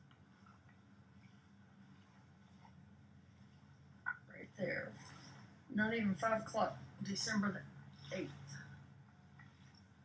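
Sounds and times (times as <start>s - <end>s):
faint low background hum: 0.0s - 10.0s.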